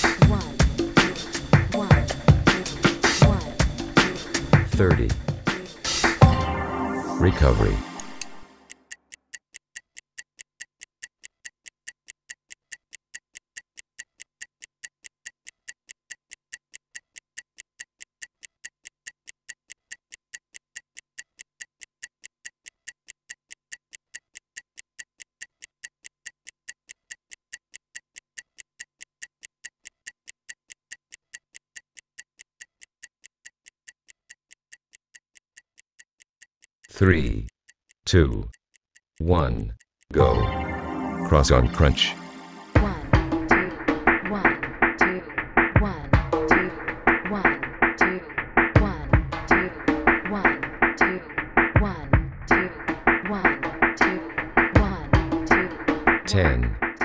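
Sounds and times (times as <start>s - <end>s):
stopwatch ticking: 0.0s - 6.3s, 8.0s - 40.2s.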